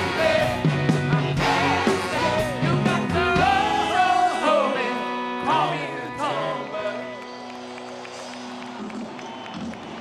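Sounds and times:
distant live concert music: 0.0 - 10.0.

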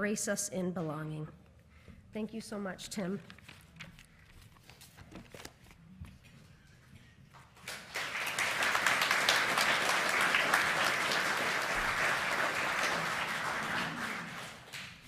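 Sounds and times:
congregation applauding: 7.6 - 15.0.

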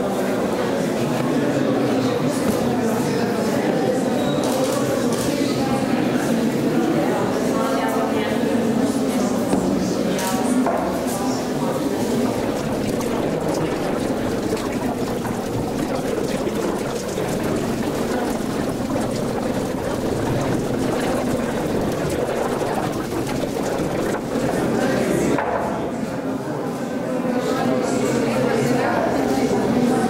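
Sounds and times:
babble of many voices: 0.0 - 30.0.

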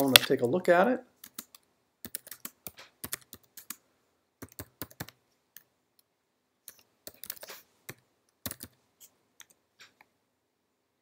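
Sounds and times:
faint computer keyboard typing: 1.2 - 3.8, 4.4 - 10.1.

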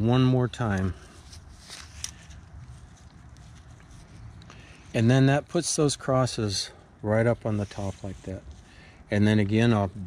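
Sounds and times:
rope and glove rustling: 0.5 - 5.0, 7.4 - 8.7.

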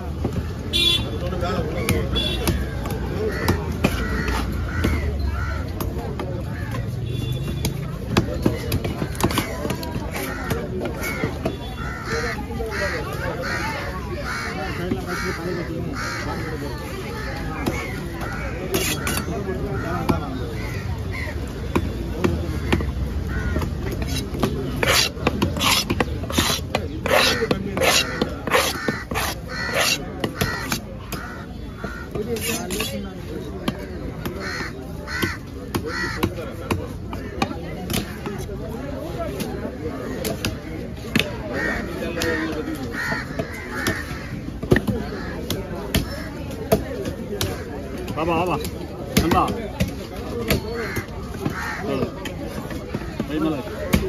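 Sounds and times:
crow cawing: 10.3 - 19.2, 22.6 - 23.8, 27.1 - 32.2, 34.4 - 36.4, 42.8 - 44.4, 50.8 - 52.1
knife chopping on wooden block: 23.6 - 31.2.

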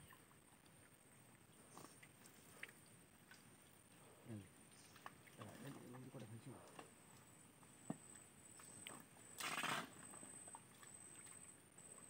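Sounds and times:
faint high-pitched whine: 0.0 - 12.0
splash of mud and water: 9.4 - 10.0.

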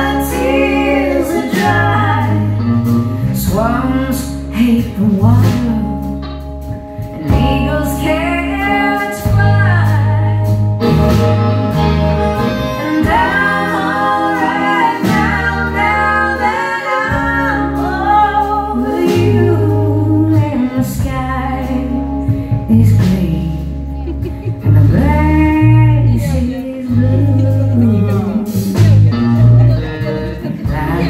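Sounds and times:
bass guitar: 0.0 - 31.0
electric guitar: 0.0 - 31.0
wavering lead melody: 0.0 - 31.0
drums beat: 12.7 - 17.8.

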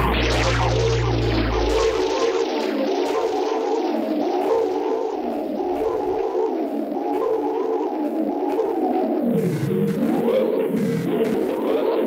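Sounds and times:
deep low drone: 0.0 - 2.6
wavering synthesizer texture: 0.0 - 3.1.

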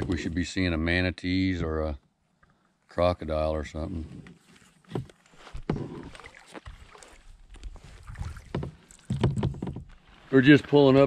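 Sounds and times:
kayak paddle in water: 3.9 - 11.0
light knocks and splashes: 4.6 - 10.3.

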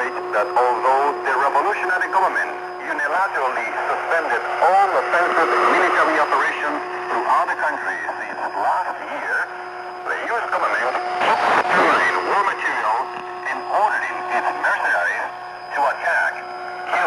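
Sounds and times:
speech over shortwave radio: 0.0 - 17.0.

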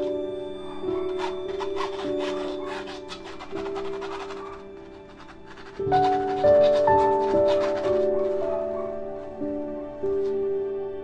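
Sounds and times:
background music with held notes: 0.0 - 11.0
pencil scratching on canvas: 0.7 - 9.0.

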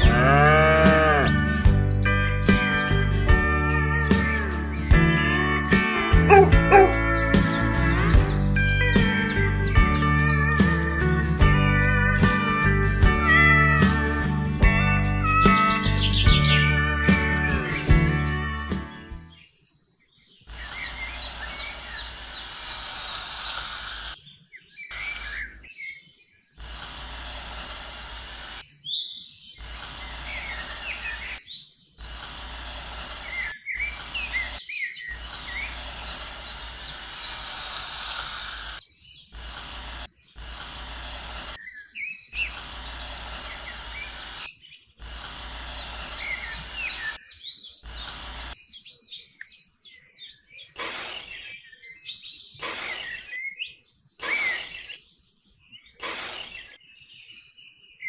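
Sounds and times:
small birds chirping: 0.0 - 58.0
outdoor background hiss: 19.3 - 57.7.

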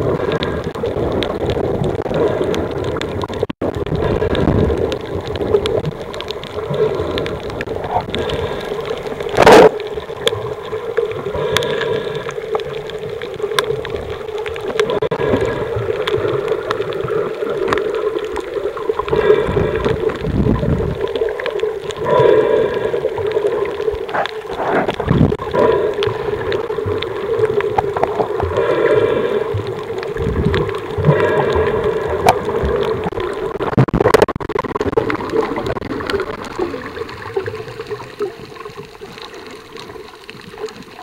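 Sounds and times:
crackling clicks: 0.0 - 41.0
steady underwater hum: 0.0 - 41.0.

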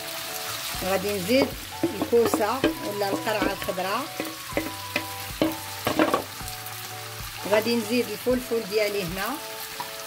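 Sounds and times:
vegetables sizzling in a frying pan: 0.0 - 10.0
wooden spoon knocking on pan: 1.3 - 6.4.

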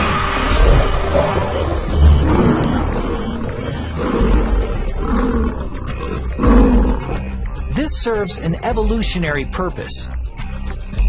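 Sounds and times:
lions roaring: 0.0 - 7.4
background music: 0.0 - 11.0.

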